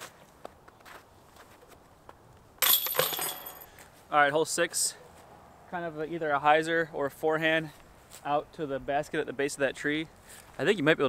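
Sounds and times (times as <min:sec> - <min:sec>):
clinking clatter: 0:02.6 - 0:03.7.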